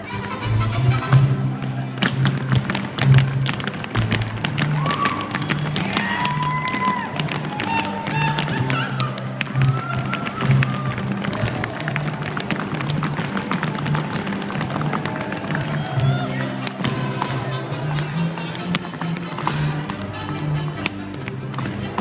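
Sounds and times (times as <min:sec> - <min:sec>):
folk dance music with bass: 0:00.0 - 0:22.0.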